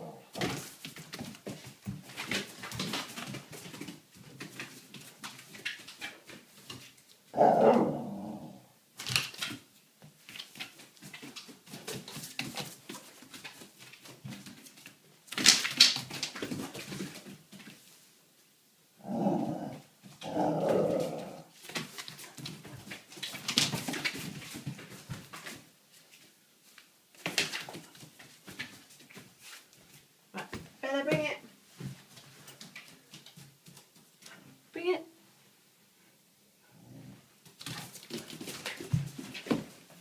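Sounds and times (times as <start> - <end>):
knocks and scuffles: 0.3 - 7.2, 37.5 - 40.0.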